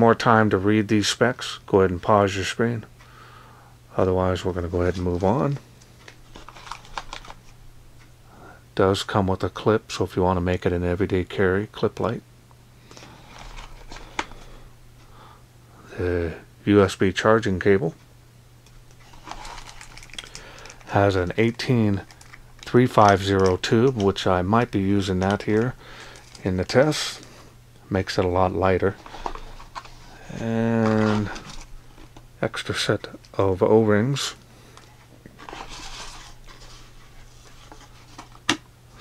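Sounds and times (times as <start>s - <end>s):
plastic bag crinkling: 6.2s - 7.6s, 19.0s - 24.3s, 25.0s - 26.5s, 30.7s - 32.2s.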